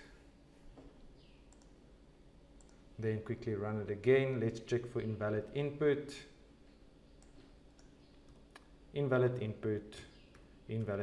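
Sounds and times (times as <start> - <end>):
faint computer mouse clicks: 1.5 - 1.8, 2.6 - 2.8.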